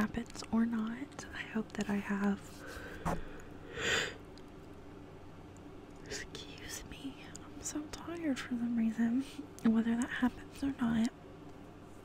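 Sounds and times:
woman whispering: 0.0s - 2.6s, 6.0s - 11.1s.

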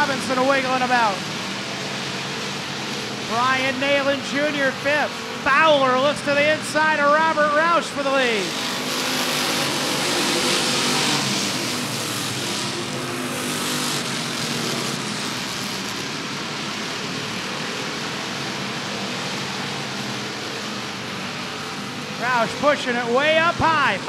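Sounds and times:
race car engines running hard: 0.0s - 24.0s.

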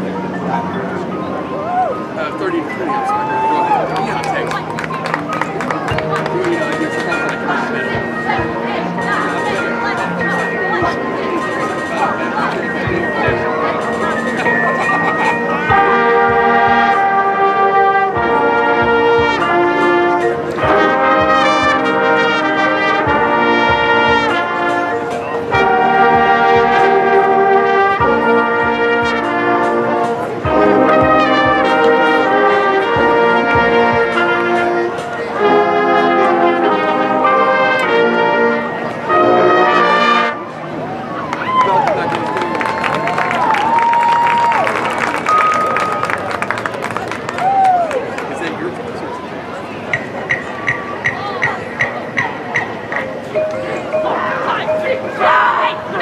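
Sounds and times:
marching band playing: 2.0s - 47.5s, 49.8s - 56.0s
crowd shouting: 54.0s - 56.0s.

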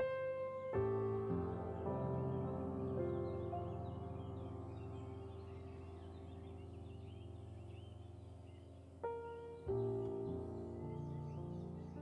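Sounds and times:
birds chirping: 0.0s - 12.0s
electric piano chords: 0.0s - 12.0s.

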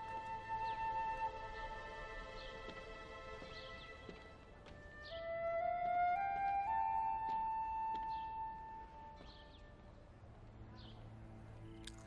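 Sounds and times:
flute-like wind instrument: 0.0s - 2.6s, 4.7s - 9.2s.

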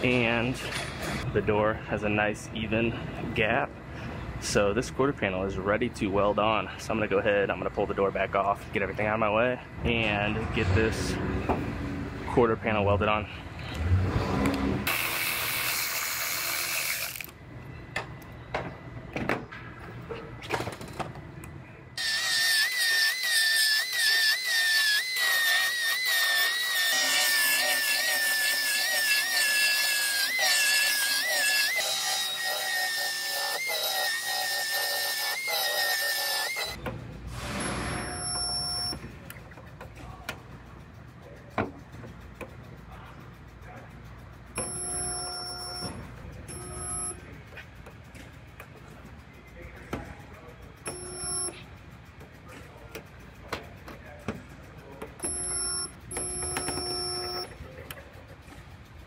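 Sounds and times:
workshop sounds: 0.0s - 1.5s, 6.6s - 59.0s
power tool running: 14.8s - 17.3s, 22.0s - 38.9s.

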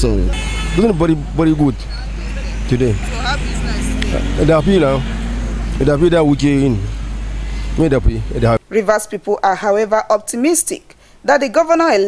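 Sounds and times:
man speaking: 0.0s - 3.2s, 4.0s - 7.0s, 7.8s - 8.6s
road traffic: 0.0s - 8.7s
steady low hum: 0.1s - 8.6s.

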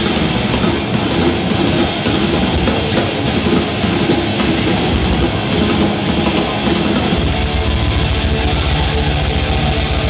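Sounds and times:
death metal band playing: 0.0s - 10.0s
distorted guitars: 0.0s - 10.0s.

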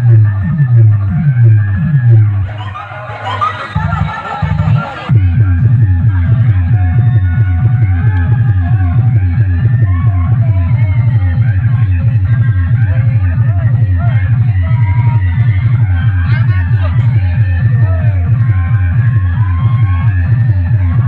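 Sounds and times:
loud dance music with heavy bass: 0.0s - 21.0s.

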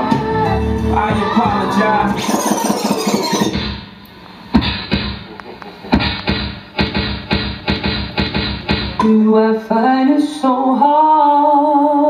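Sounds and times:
dj music over speakers: 0.0s - 9.4s.

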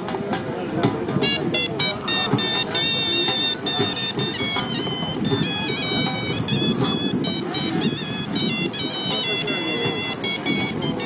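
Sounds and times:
crowd babble: 0.0s - 11.0s
wind instrument piping melody: 1.1s - 11.0s.

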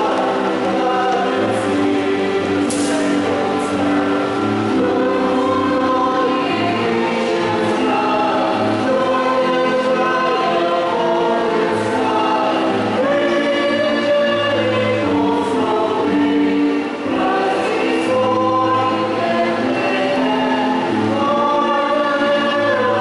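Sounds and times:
church choir singing a hymn: 0.0s - 23.0s.

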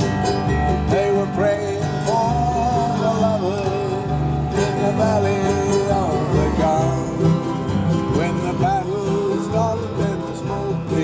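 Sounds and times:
acoustic guitars strumming: 0.0s - 11.0s
bending lead melody: 0.0s - 11.0s
mandolin: 0.0s - 11.0s
upright double bass: 0.0s - 11.0s.

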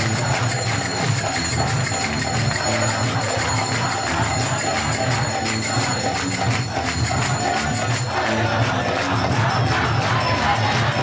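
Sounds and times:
crowd chanting: 0.0s - 11.0s
drum beating steady rhythm: 0.0s - 11.0s
small hand cymbals: 0.0s - 11.0s.

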